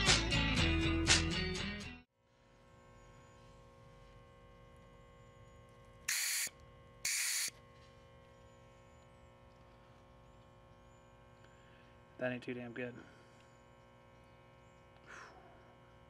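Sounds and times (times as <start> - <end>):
faint steady hum: 2.2 - 16.0
refrigerant hissing: 6.1 - 6.5, 7.1 - 7.5.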